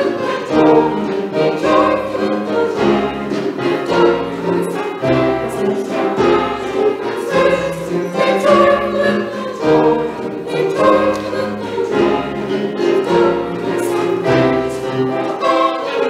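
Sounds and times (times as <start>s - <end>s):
church choir singing in harmony: 0.0s - 16.0s
piano: 0.0s - 16.0s.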